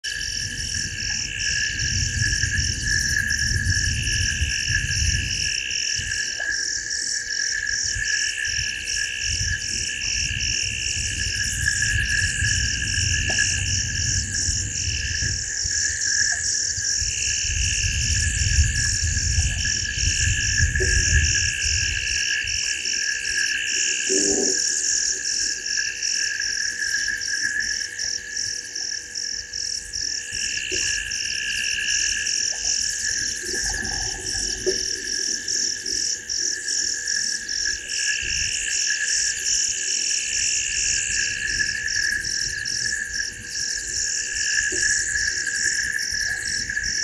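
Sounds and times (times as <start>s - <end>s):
frogs calling: 0.0s - 47.0s
insects calling: 0.0s - 47.0s.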